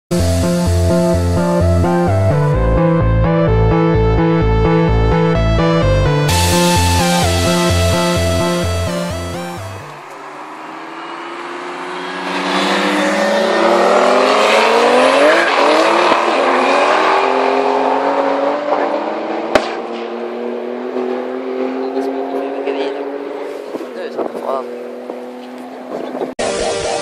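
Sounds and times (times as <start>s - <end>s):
drag race cars accelerating: 9.8s - 23.9s.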